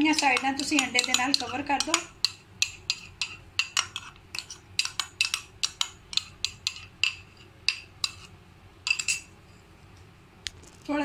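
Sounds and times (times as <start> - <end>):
metal spoon clinking against bowl: 0.0 - 9.3.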